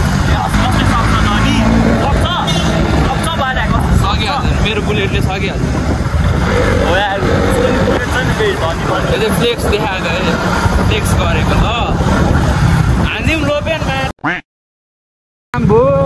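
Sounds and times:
voices talking: 0.0s - 12.2s
wind buffeting microphone: 0.0s - 14.1s.

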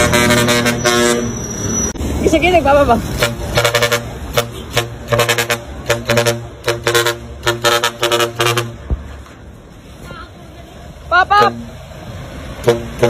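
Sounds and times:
truck horn blasts: 0.0s - 1.4s, 3.1s - 8.9s, 12.6s - 13.0s.

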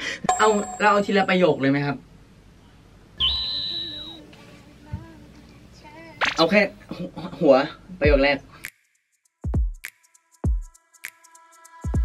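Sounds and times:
tone sliding downward: 3.2s - 4.2s
high whistle-like tone: 3.2s - 4.3s.

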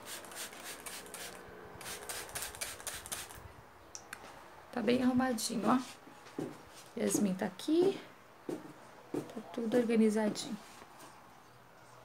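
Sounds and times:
spray bottle squirts: 0.0s - 3.4s.

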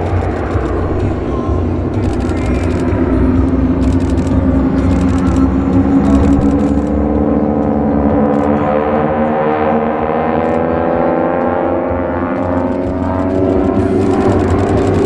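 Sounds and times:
propeller planes droning: 0.0s - 15.0s.

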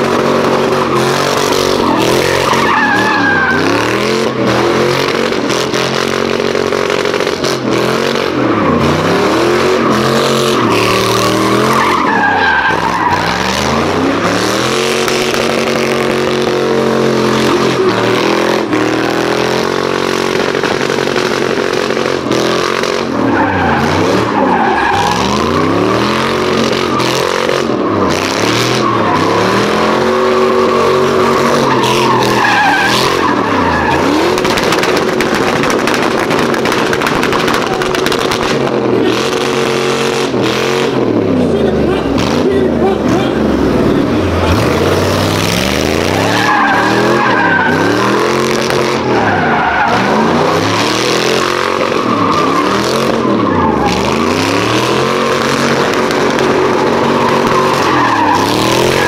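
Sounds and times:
engine revving: 0.0s - 59.0s
tyres squealing on asphalt: 0.0s - 59.0s.

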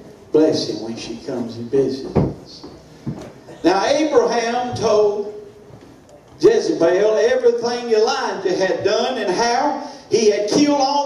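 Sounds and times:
man speaking into a microphone: 0.3s - 2.8s, 3.5s - 5.5s, 6.3s - 11.0s.

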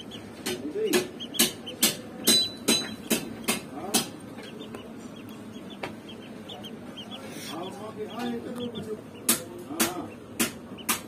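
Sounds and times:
duckling peeping: 0.0s - 11.0s.

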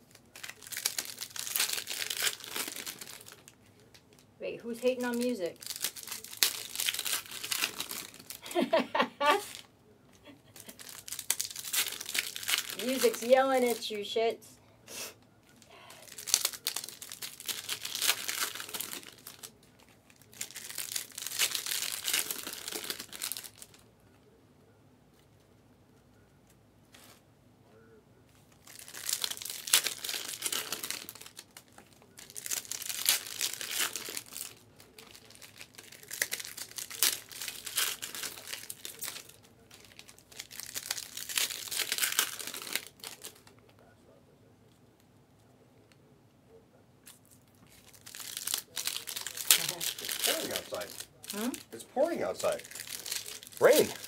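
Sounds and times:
card pack wrappers tearing: 0.0s - 4.2s, 4.8s - 8.5s, 10.6s - 13.9s, 15.9s - 23.8s, 28.6s - 43.6s, 47.0s - 54.0s.

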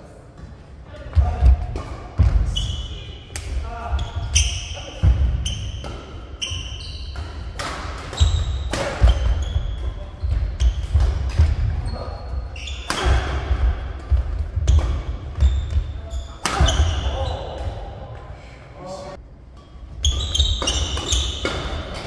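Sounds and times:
shoe squeaks: 3.9s - 7.4s, 8.1s - 11.0s, 11.8s - 13.1s, 15.4s - 17.6s, 20.0s - 21.5s.

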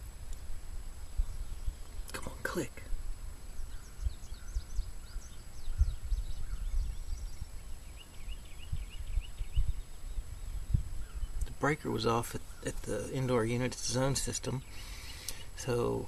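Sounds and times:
bird chirps: 1.1s - 16.0s.

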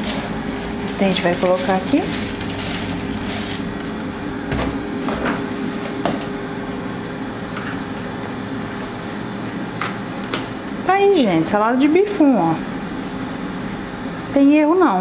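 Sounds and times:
kitchen background hum: 0.0s - 15.0s.

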